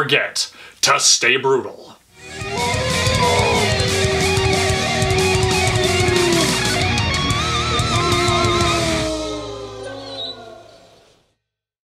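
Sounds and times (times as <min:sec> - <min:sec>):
electric guitar chord ringing: 0:02.2 - 0:10.2.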